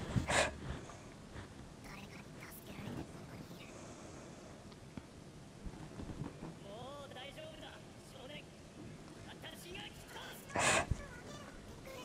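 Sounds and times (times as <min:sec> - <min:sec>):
faint dialogue: 0:06.5 - 0:12.0.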